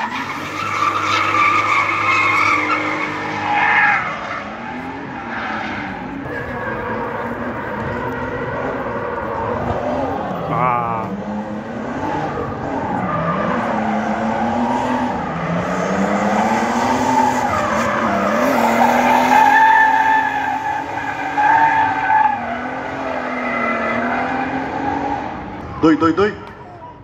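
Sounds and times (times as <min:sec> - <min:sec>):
car engine revving hard: 0:04.4 - 0:25.7.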